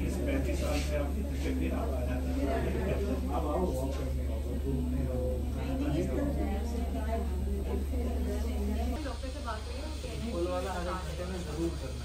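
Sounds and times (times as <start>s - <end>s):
low indistinct voices: 0.0s - 12.0s
steady low hum: 0.0s - 12.0s.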